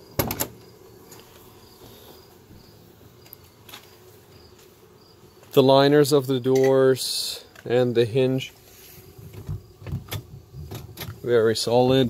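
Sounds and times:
car door latch clicks and clunk: 0.2s - 0.6s.

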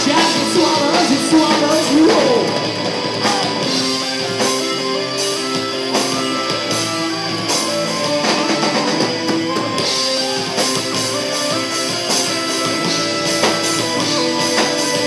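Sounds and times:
bass guitar: 0.0s - 15.0s
electric guitars: 0.0s - 15.0s.

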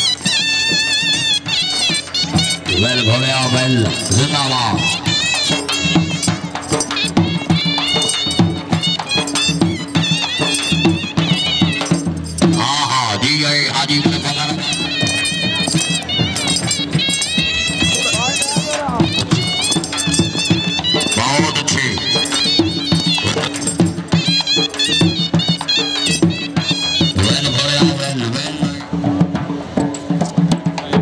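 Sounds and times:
shehnai melody: 0.0s - 28.9s
dhol drum beat: 0.0s - 31.0s.

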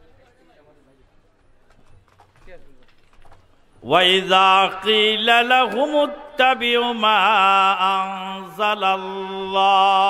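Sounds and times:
people talking in background: 0.0s - 3.8s
loud amplified recitation: 3.6s - 10.0s.

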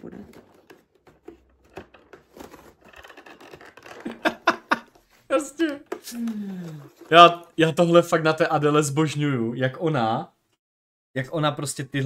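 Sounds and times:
cardboard tearing and rustling: 0.3s - 4.4s.

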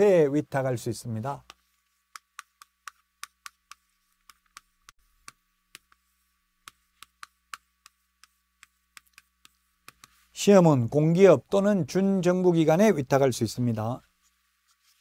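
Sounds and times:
chalk clicking on blackboard: 1.4s - 10.3s.

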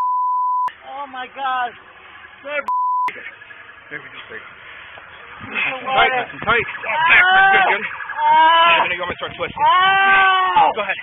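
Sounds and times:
high-pitched censor bleep: 0.0s - 0.7s, 2.7s - 3.1s
people talking: 0.8s - 1.8s, 3.9s - 4.5s, 5.4s - 11.0s.

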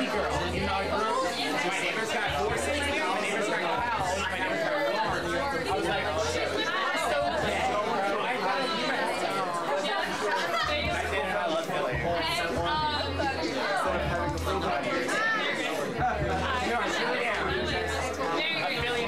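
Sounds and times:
music with low bass line: 0.0s - 1.1s, 2.2s - 3.0s, 3.7s - 7.8s, 10.5s - 14.9s, 15.9s - 19.0s
crowd chatter: 0.0s - 19.0s.

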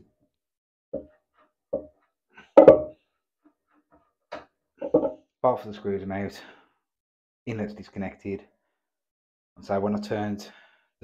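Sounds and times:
knocks and clunks on fitting: 2.6s - 2.9s, 4.8s - 5.1s.

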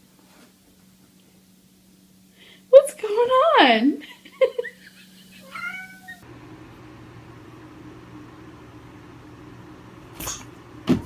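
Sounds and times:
faint low room hum: 0.0s - 11.0s
cat meowing: 5.4s - 6.2s.

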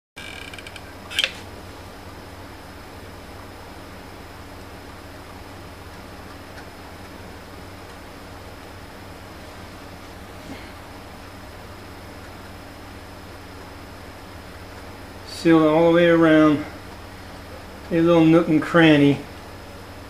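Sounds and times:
steady mechanical hum: 0.2s - 20.0s
sharp click: 0.6s - 1.5s.

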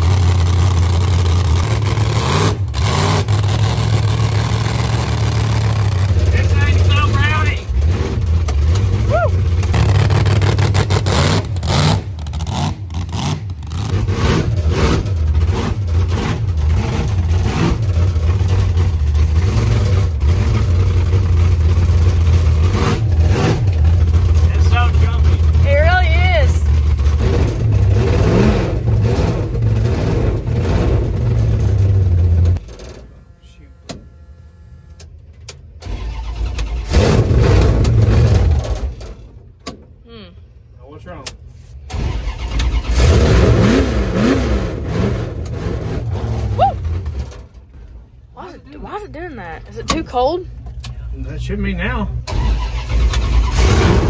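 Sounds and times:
engine cranking on starter: 35.7s - 39.2s, 41.8s - 43.6s, 52.2s - 54.0s.

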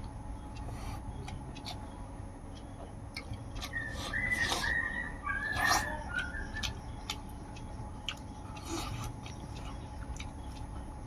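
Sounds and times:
mouth clicks and chewing: 0.0s - 11.0s.

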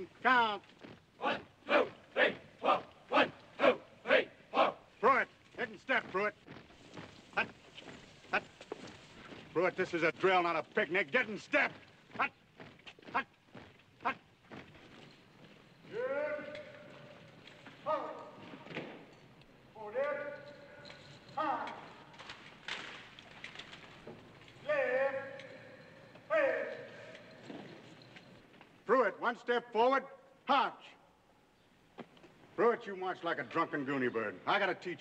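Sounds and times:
person calling marching commands: 0.0s - 19.0s, 19.6s - 22.6s, 24.4s - 27.7s, 28.7s - 31.2s, 32.4s - 35.0s
boots marching in step: 0.0s - 19.7s.

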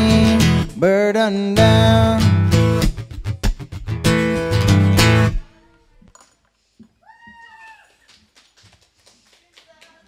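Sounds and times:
person whooping: 7.0s - 8.1s.

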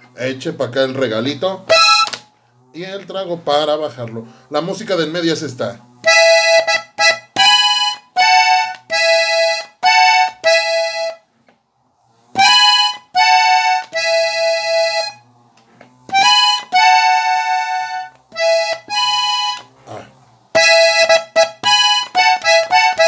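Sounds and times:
button accordion playing: 0.9s - 2.3s, 4.2s - 11.6s, 12.3s - 23.0s.

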